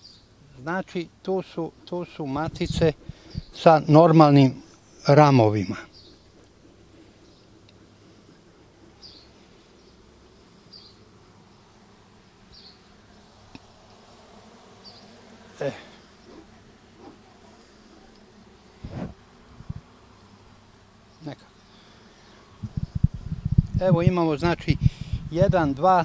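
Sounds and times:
honey bees buzzing faintly: 0.0s - 26.0s.

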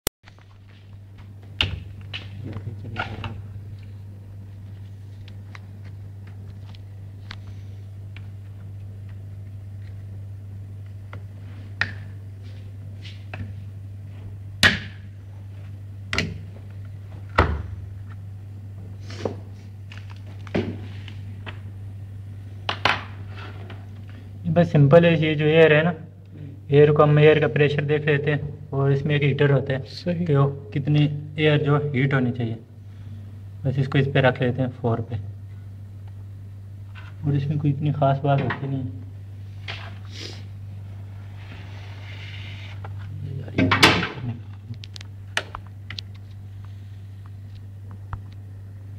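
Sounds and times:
steady low hum: 0.3s - 48.9s.

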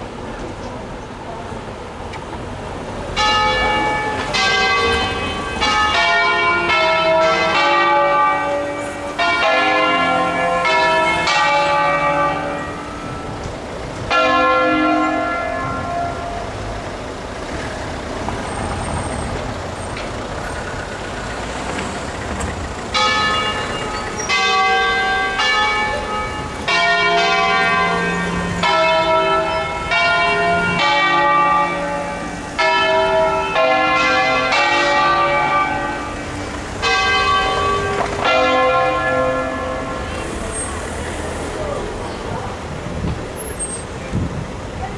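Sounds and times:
church bells ringing: 3.1s - 17.4s, 22.8s - 40.4s.

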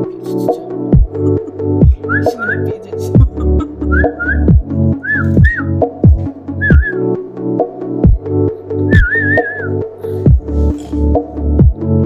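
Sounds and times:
deep drum beat: 1.0s - 2.4s, 3.2s - 4.8s, 5.4s - 7.0s, 7.7s - 8.3s, 9.0s - 9.2s, 10.3s - 10.5s
whistled melody: 2.0s - 2.7s, 3.8s - 7.2s, 8.8s - 9.9s.

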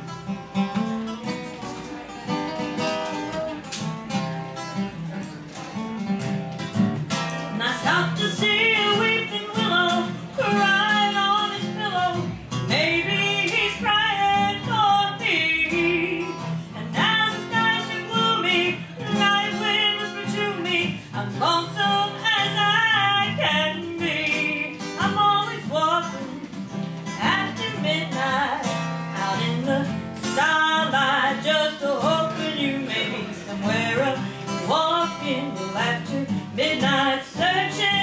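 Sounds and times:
strummed acoustic guitar: 0.0s - 38.0s
woman singing country song: 6.7s - 38.0s.

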